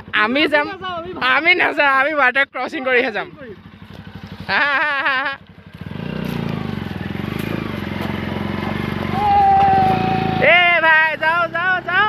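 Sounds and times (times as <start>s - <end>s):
motorcycle engine running: 0.0s - 12.0s
man laughing: 4.4s - 5.5s.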